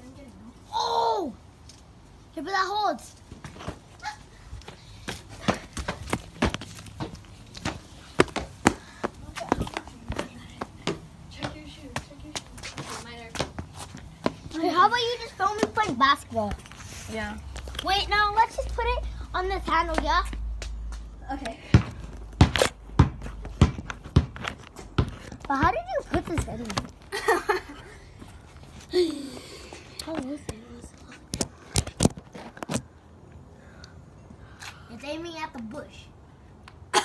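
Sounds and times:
footsteps: 3.2 - 27.1
basketball bouncing on hard ground: 4.6 - 16.8, 19.6 - 27.1.

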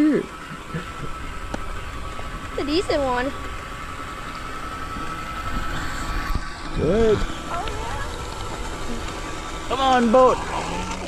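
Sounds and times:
electric motor high whine: 0.0 - 11.0.

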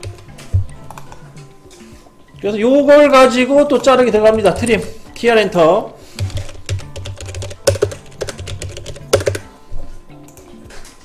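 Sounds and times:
typing on computer keyboard: 6.2 - 9.5.

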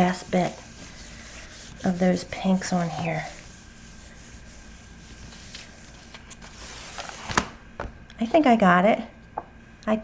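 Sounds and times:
hands rubbing paper: 0.0 - 7.2.

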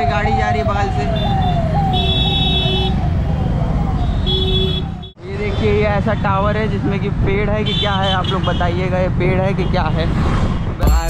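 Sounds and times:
police car siren: 0.0 - 5.2
rumble of road traffic: 0.0 - 11.0
vehicle horn: 4.2 - 5.1, 7.6 - 8.7.

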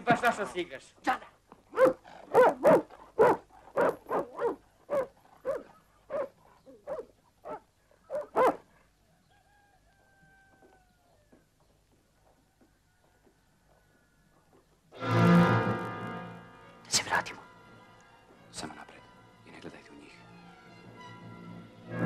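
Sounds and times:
dog barking: 1.7 - 8.9.

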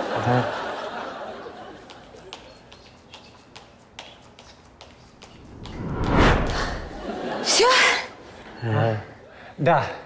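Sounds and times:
loud rushing whoosh: 5.2 - 7.2.

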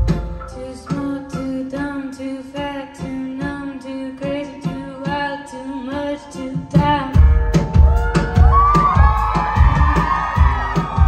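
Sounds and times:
live band music: 0.0 - 3.6, 4.2 - 11.0
audience whooping and cheering: 7.7 - 11.0.

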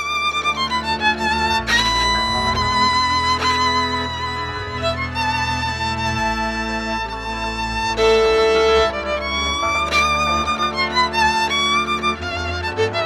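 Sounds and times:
folk violin melody with vibrato: 0.0 - 13.0
sustained bass notes: 0.0 - 13.0.

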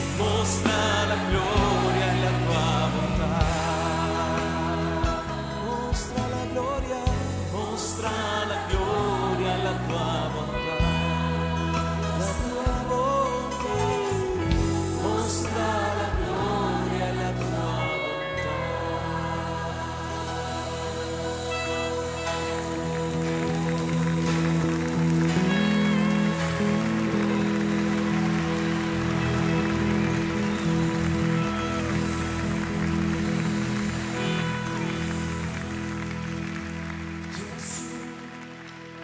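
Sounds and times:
slow worship music chords: 0.0 - 39.0.

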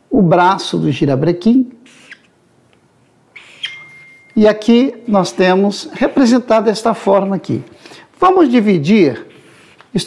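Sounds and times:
marker squeaking: 1.8 - 2.4, 3.0 - 4.4
marker scratching on paper: 1.9 - 2.3.

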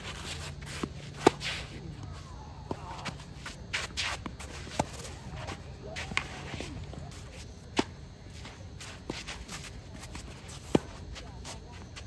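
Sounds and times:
tennis ball off rackets: 0.0 - 2.0, 2.6 - 8.0
shoes sliding on clay: 0.0 - 12.0.

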